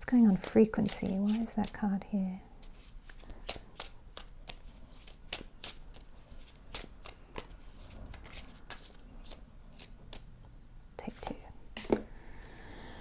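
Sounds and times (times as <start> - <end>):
cards being shuffled: 0.2 - 2.0, 2.6 - 10.3.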